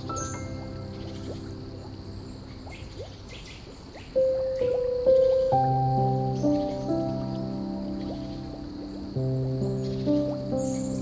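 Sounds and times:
piano phrases: 0.0 - 3.4, 4.0 - 11.0
insects chirping: 0.0 - 11.0
low water noise: 0.0 - 11.0.

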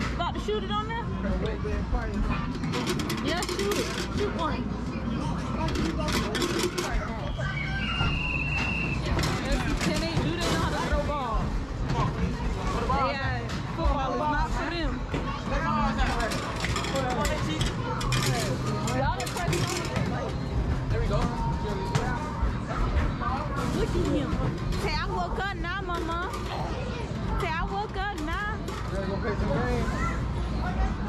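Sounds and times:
babble of voices: 0.0 - 31.0.

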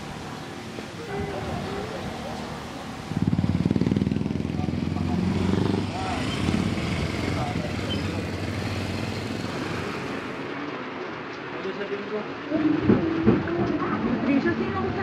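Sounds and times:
small motorcycle engine revving: 3.1 - 10.2.

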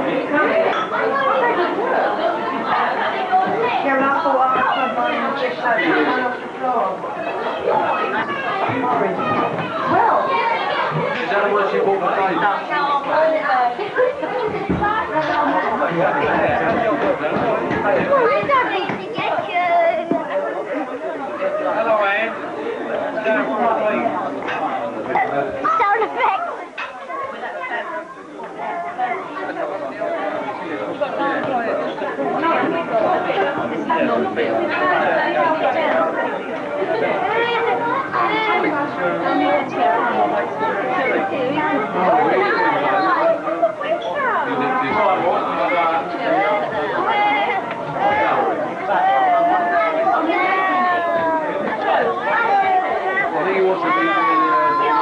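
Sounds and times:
several people talking: 0.0 - 55.0.

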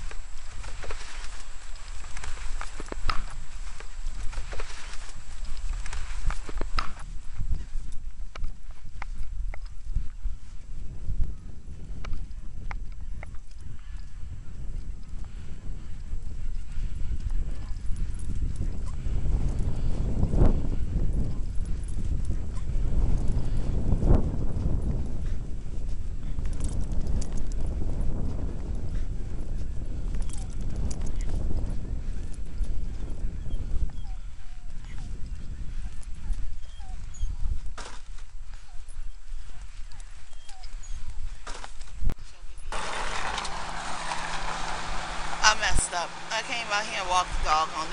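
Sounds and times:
footsteps in loose sand: 0.0 - 47.9
wind rumbling on microphone: 0.0 - 47.9.

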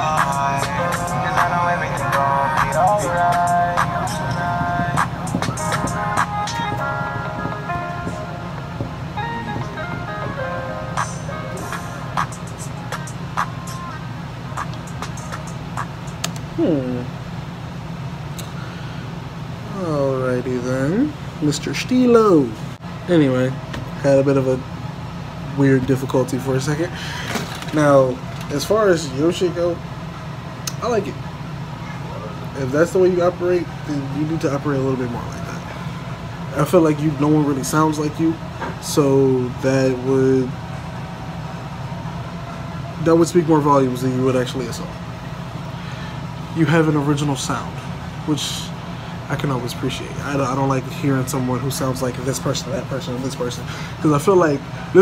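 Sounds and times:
low room hum: 0.0 - 55.0.

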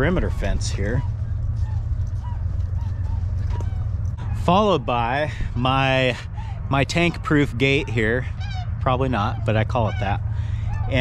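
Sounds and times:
birds chirping: 0.0 - 11.0
wind rumble on microphone: 0.0 - 11.0.

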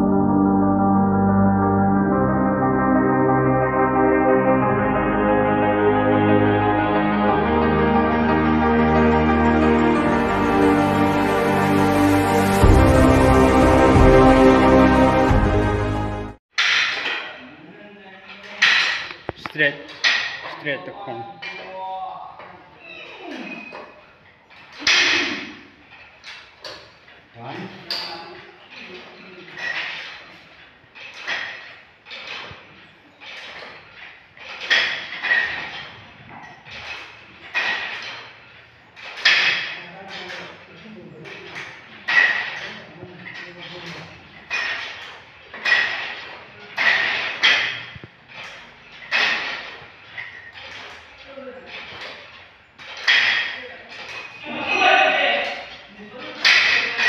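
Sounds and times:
weight stack clanking: 18.4 - 20.6, 23.6 - 54.6, 55.4 - 57.0.

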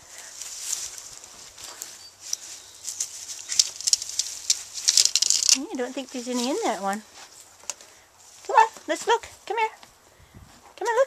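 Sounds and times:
dry straw rustling and crackling: 0.0 - 9.3.

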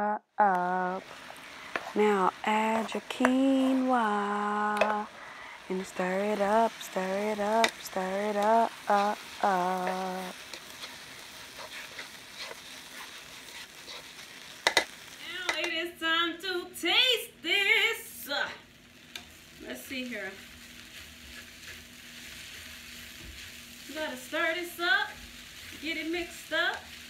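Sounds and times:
food sizzling in a skillet: 0.4 - 27.0.

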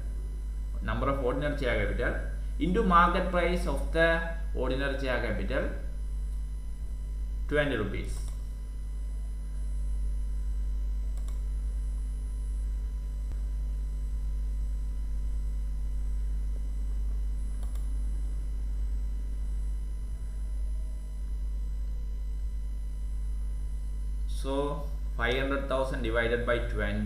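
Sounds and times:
low electrical hum: 0.0 - 27.0
faint clicks: 8.1 - 8.5, 11.1 - 11.5, 17.5 - 18.0.

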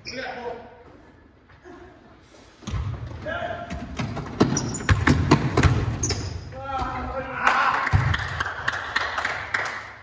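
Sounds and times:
basketball bouncing on wooden floor: 3.7 - 7.0.

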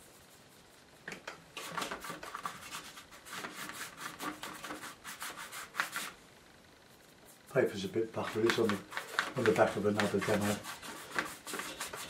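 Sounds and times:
paintbrush scrubbing paper: 0.0 - 1.0, 1.6 - 6.2, 6.9 - 12.0.

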